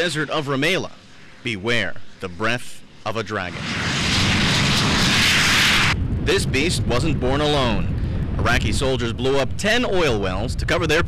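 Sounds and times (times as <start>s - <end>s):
jet-like rush of fire: 2.8s - 11.0s.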